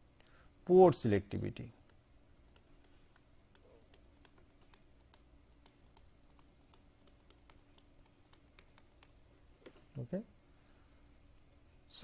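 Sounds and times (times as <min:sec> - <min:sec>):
low steady hum: 0:00.0 - 0:12.0
stylus tapping on tablet screen: 0:01.8 - 0:09.8.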